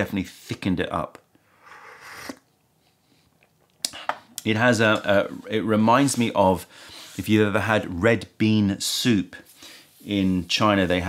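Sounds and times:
slurping sip of tea: 0:01.5 - 0:02.5.

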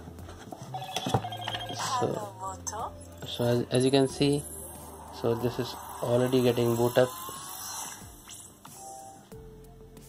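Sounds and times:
phone boot-up chime: 0:00.7 - 0:02.2.

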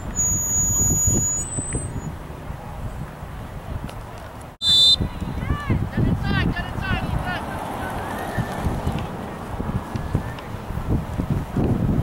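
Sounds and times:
wind buffeting microphone: 0:00.0 - 0:12.0
referee's whistle blast: 0:00.1 - 0:02.1, 0:04.6 - 0:05.1.

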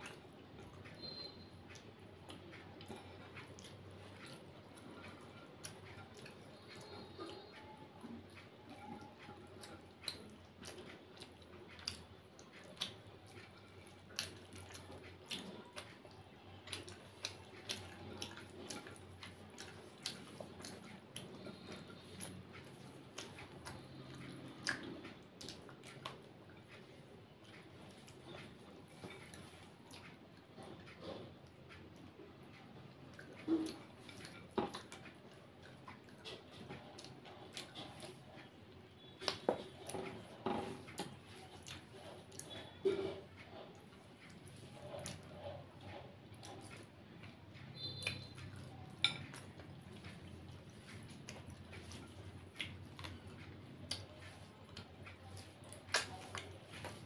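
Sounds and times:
wet chewing and mouth clicks: 0:00.0 - 0:57.0.

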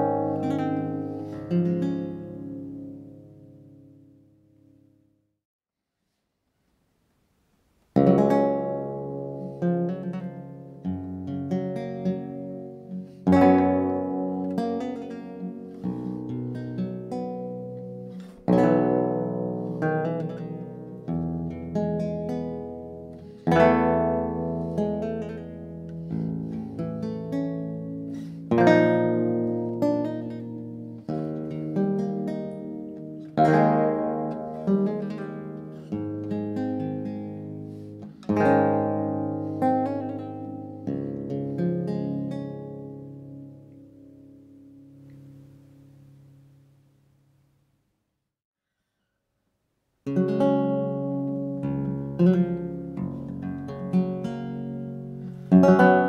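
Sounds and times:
theorbo plucked chords: 0:00.0 - 0:04.3, 0:08.0 - 0:46.6, 0:50.1 - 0:56.0.

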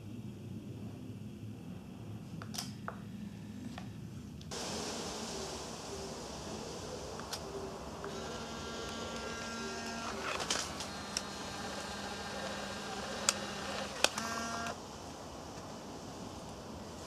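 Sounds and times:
sharp mechanical clicks: 0:08.0 - 0:14.8
camera motor whirring: 0:08.1 - 0:14.8.

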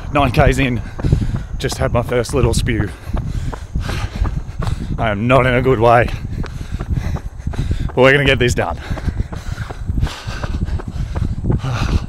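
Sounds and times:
wind rumble: 0:00.0 - 0:12.0.

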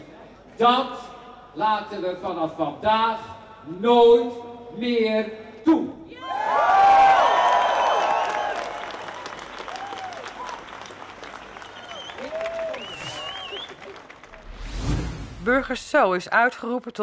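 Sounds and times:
crowd whooping: 0:06.2 - 0:14.6
crowd clapping: 0:06.6 - 0:14.5.

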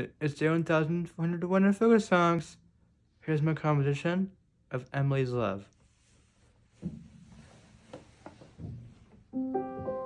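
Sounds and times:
soft knocks and rustles: 0:06.4 - 0:10.0.

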